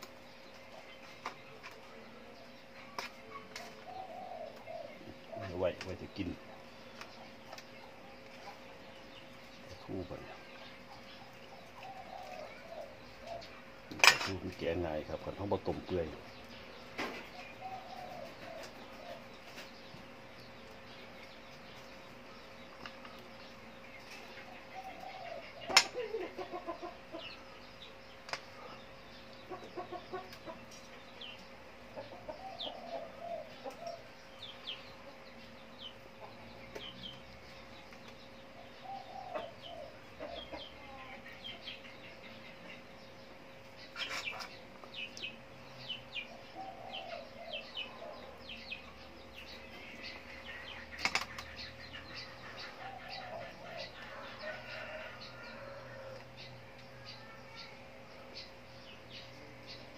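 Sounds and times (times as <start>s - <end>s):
chickens clucking: 0.0s - 59.9s
small birds chirping: 0.0s - 59.9s.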